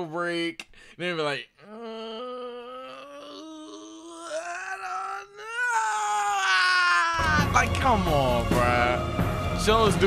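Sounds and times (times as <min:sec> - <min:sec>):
man vocalizing a rising groan: 0:01.6 - 0:07.2.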